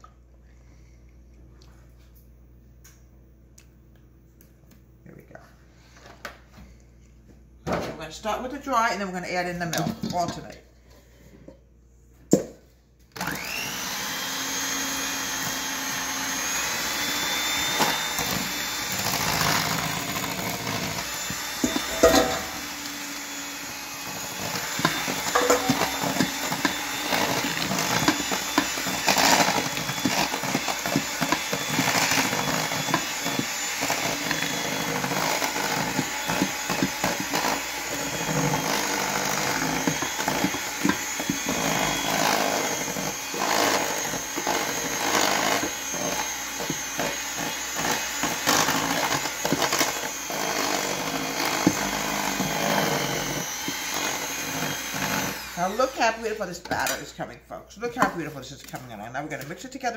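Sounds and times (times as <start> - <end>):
electric hand mixer running: 13.2 - 57.0
beaters knocking against steel bowl: 25.3 - 26.0.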